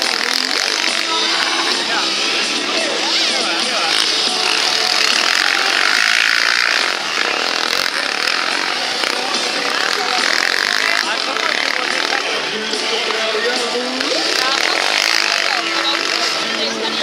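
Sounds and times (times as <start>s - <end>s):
quad bike engines revving: 0.0s - 17.0s.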